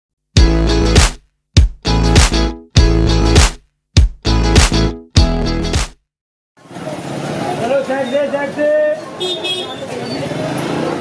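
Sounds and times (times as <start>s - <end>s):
crowd voices and chatter: 6.6s - 11.0s.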